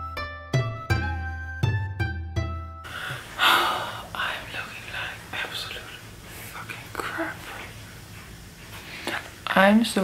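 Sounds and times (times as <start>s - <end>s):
woman whispering: 4.1s - 7.8s.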